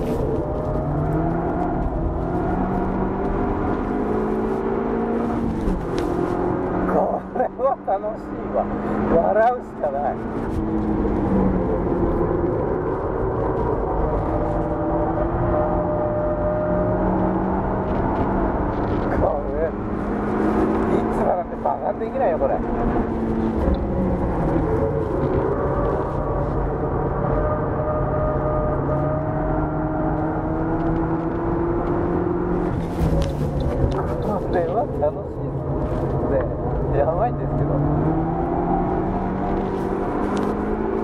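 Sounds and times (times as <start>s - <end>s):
car engine under hard driving: 0.0s - 41.0s
road and tyre noise: 0.0s - 41.0s.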